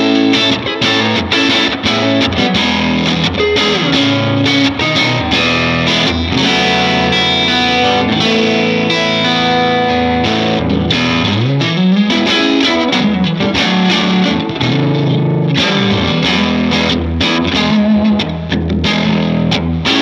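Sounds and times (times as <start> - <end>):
electric guitar chords and notes: 0.0 - 20.0.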